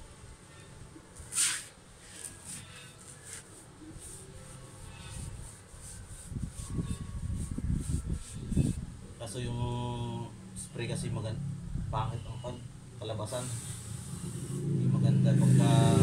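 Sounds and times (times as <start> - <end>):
paintbrush scrubbing concrete wall: 1.3 - 8.9, 13.3 - 16.0.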